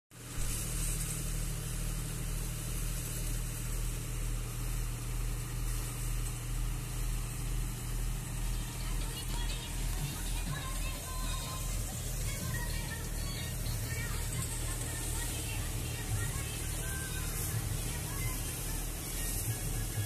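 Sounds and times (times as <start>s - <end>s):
thresher and tractor running: 0.2s - 20.0s.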